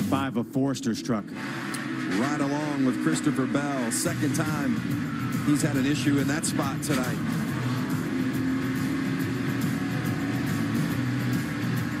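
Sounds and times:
race truck engine at speed: 0:00.0 - 0:12.0.

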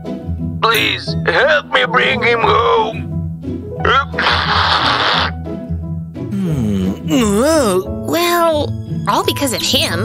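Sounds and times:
background music: 0:00.0 - 0:10.0
cartoon nose blow: 0:04.4 - 0:05.3, 0:06.3 - 0:07.1.

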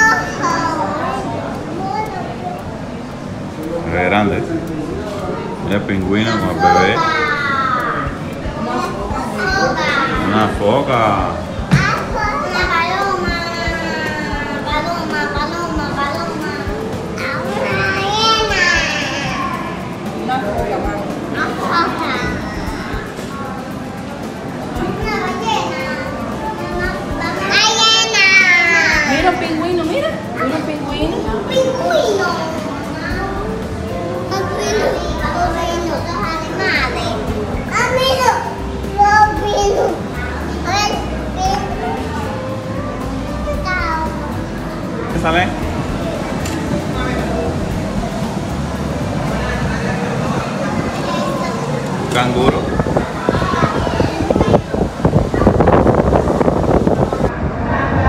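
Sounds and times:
children talking and calling out: 0:00.0 - 0:58.0
other voices: 0:00.0 - 0:58.0.

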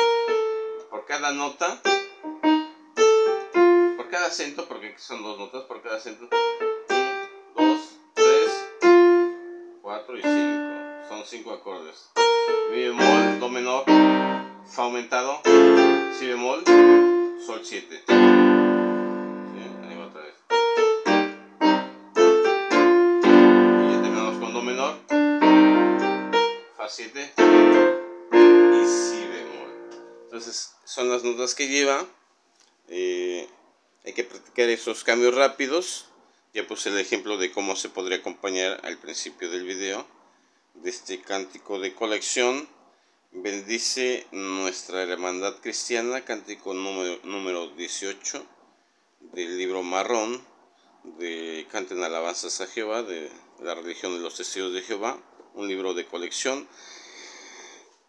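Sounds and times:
electronic keyboard piano notes: 0:00.0 - 0:01.0, 0:01.7 - 0:04.4, 0:06.3 - 0:11.2, 0:12.2 - 0:26.8, 0:27.4 - 0:30.5.

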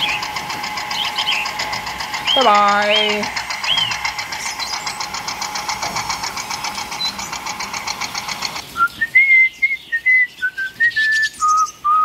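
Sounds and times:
toy tractor engine pulsing: 0:00.0 - 0:11.8.

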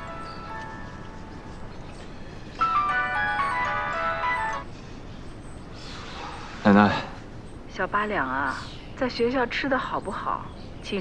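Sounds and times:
phone ringtone chime: 0:02.6 - 0:04.7.

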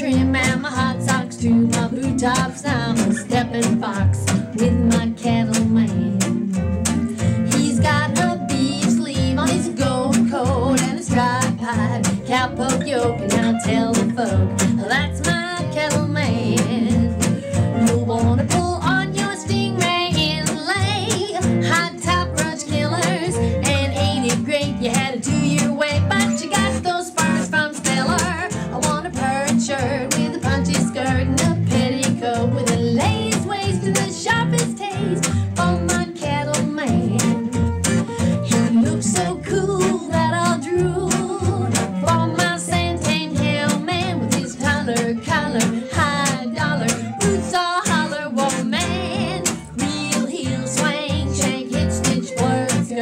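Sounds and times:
acoustic guitar strumming: 0:00.0 - 0:53.0
woman singing: 0:00.0 - 0:53.0.

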